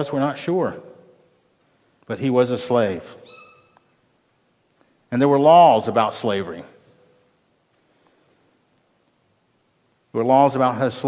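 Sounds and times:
speech echo: 0.0 - 1.3, 2.0 - 3.6, 5.1 - 7.2, 10.1 - 11.0
high-pitched squeak: 3.2 - 3.8.

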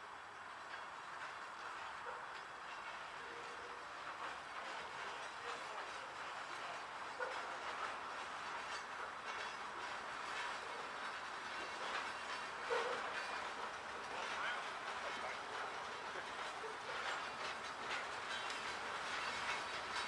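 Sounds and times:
steel wheels rumbling on rail: 0.0 - 20.0
wheels clicking over rail joints: 0.0 - 20.0.

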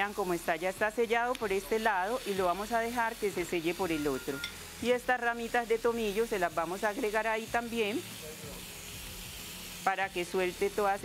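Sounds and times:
meat sizzling in a pan: 0.0 - 11.0
woman speaking: 9.9 - 11.0.

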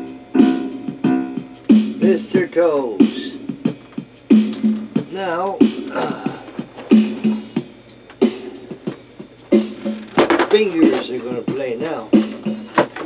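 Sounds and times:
man making rhythmic vocal sounds: 2.0 - 3.4, 5.0 - 6.7.

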